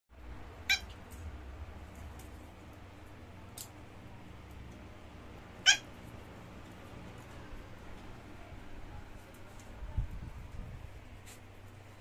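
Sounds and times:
young pet squealing: 0.6 - 0.9, 5.6 - 6.0.

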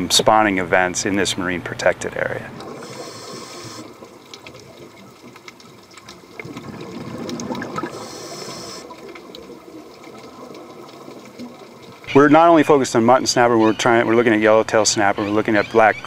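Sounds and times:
underwater water noise: 0.0 - 16.0
faint clicks and crackles: 2.6 - 12.1.

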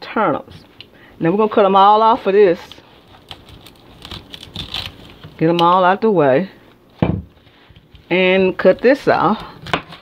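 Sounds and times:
knife cutting crisp stems: 3.1 - 5.7.

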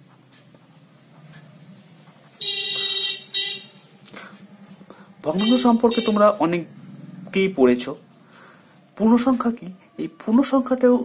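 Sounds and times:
vehicle horn honking: 2.4 - 3.9, 5.3 - 6.4.

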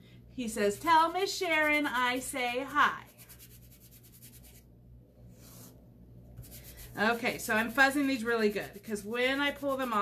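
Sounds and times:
rubbing and rustling on fabric: 0.8 - 5.8, 6.4 - 10.0.

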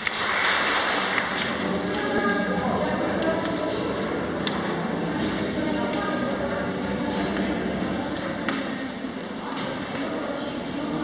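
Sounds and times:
audience applause: 0.0 - 2.0.

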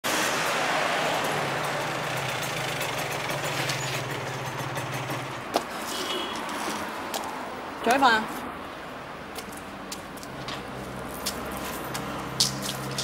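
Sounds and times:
motorcycle engine running: 1.4 - 5.5.

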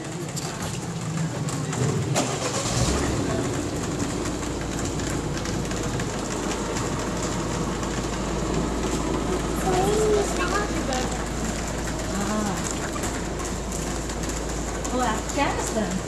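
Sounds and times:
low engine rumble: 0.0 - 16.0.

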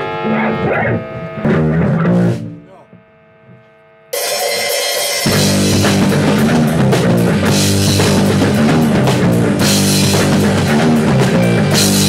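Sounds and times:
rock band playing: 0.0 - 2.8, 4.2 - 12.0
electrical mains hum: 0.0 - 4.1.

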